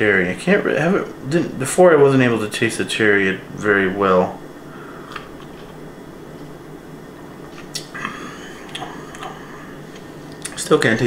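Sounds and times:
room hum: 0.0s - 11.0s
mouth clicks and smacks: 7.6s - 9.4s.

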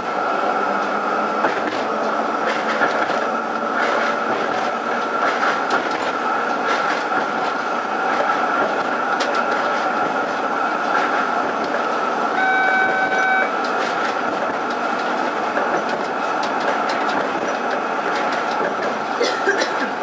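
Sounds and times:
tram wheels rumbling on rail: 0.0s - 20.0s
high-pitched tone: 12.4s - 13.5s.

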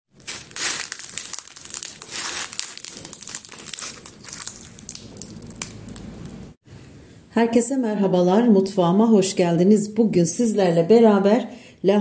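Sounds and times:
crisp flatbread crackling when torn: 0.2s - 6.1s.

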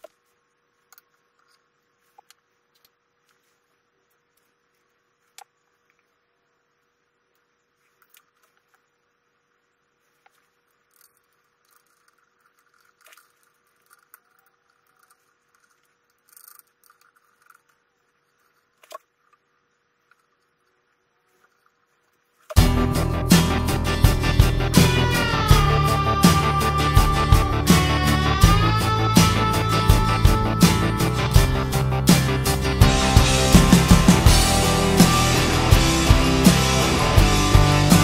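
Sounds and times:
small metal parts clicking: 10.8s - 17.8s.

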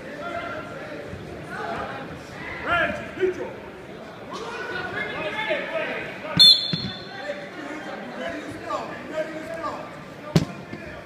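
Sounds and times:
chatter of voices: 0.0s - 11.0s
referee's whistle blast: 6.4s - 7.1s.

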